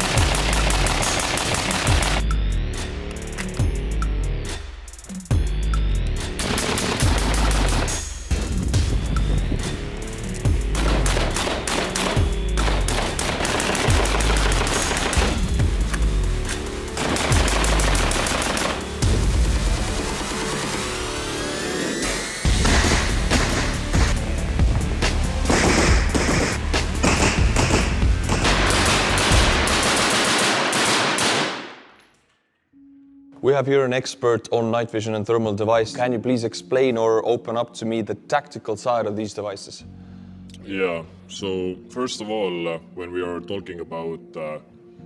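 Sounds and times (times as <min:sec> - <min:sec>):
rapid rifle fire: 0:00.0 - 0:02.2, 0:06.4 - 0:08.0, 0:10.7 - 0:15.6, 0:16.9 - 0:20.9, 0:22.6 - 0:24.2, 0:25.4 - 0:31.9
background music with low bass: 0:00.0 - 0:30.2, 0:32.8 - 0:45.0.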